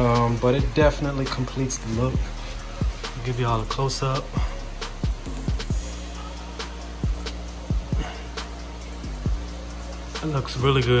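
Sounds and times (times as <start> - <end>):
bass line: 0.0 - 11.0
hi-hat ticks: 0.0 - 11.0.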